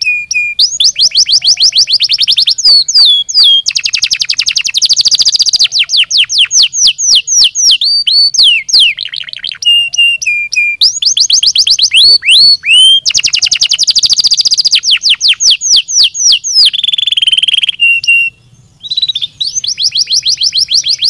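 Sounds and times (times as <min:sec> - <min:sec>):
canary singing rapid trills: 0:00.0 - 0:21.0.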